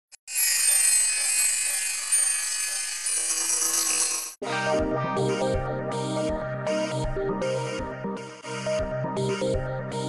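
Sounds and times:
shimmering synthesized tones: 0.3 - 4.4.

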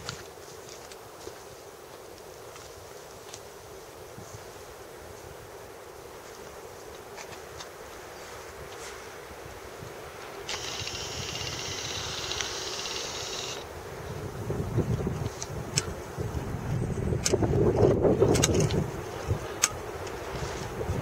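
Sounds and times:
wind on microphone: 8.1 - 21.0
high-pitched ringing tone: 10.5 - 13.6.

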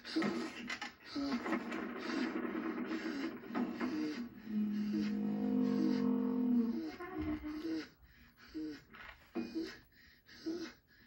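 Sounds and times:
long held low note: 4.4 - 7.5.

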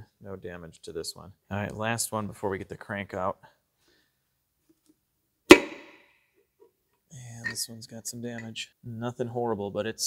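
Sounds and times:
sharp metallic knock: 5.5 - 6.0.

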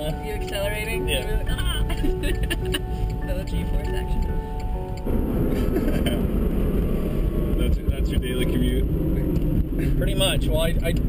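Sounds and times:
road and wind noise in car: 0.0 - 11.0
people laughing: 1.9 - 2.9, 5.5 - 6.2.

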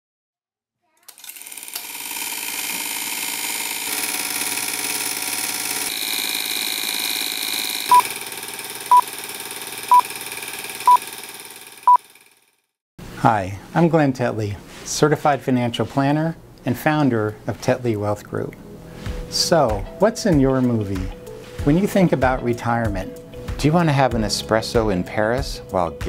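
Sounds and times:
film projector running: 1.1 - 12.5.

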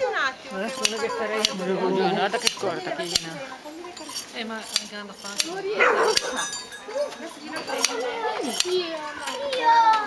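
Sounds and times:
shear blades clicking: 0.6 - 1.7, 2.3 - 3.4, 4.0 - 6.6, 7.7 - 10.0.

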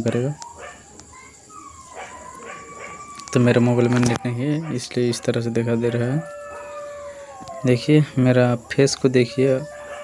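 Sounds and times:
high animal call: 0.0 - 10.0.

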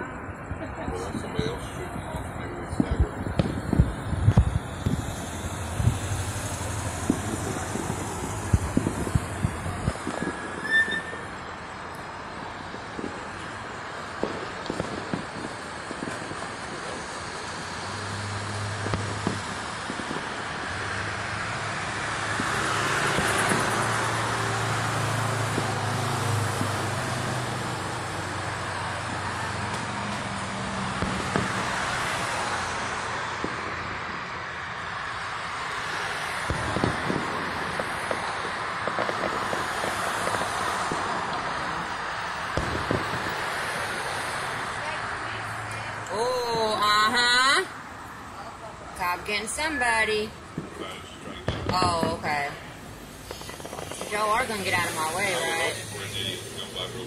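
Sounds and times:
cars passing: 0.0 - 57.0
fireworks bangs and cracks: 0.0 - 57.0
street traffic hum: 0.0 - 57.0.

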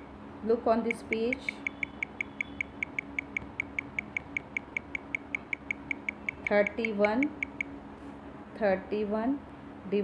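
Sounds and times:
low steady hum: 0.0 - 10.0
rapid high-pitched ticks: 0.8 - 7.7.

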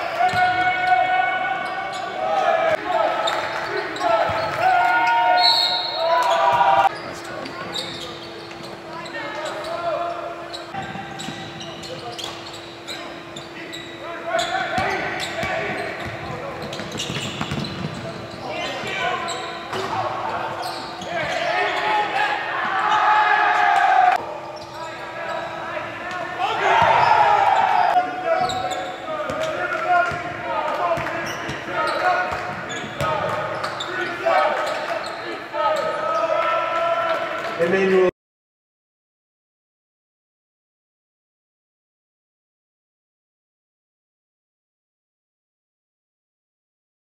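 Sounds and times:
players' voices echoing: 0.0 - 38.1.

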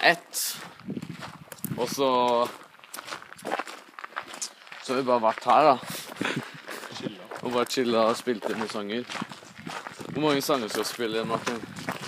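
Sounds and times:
footsteps: 0.4 - 12.0
person talking: 1.6 - 2.6, 4.3 - 9.2, 10.0 - 12.0.

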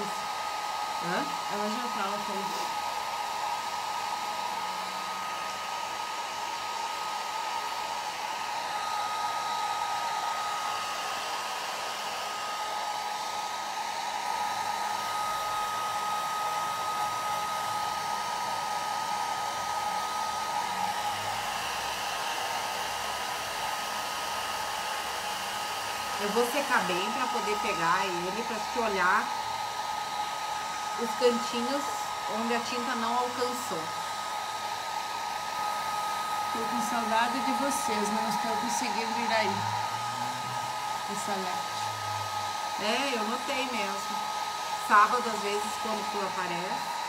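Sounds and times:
hair dryer running: 0.0 - 47.0.

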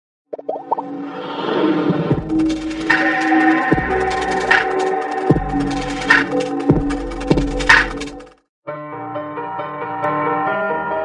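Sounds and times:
bubbly pops: 0.3 - 0.8.

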